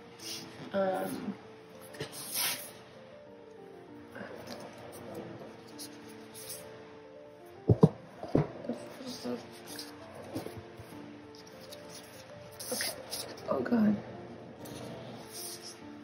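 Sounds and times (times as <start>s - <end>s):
soft piano music: 0.0s - 16.0s.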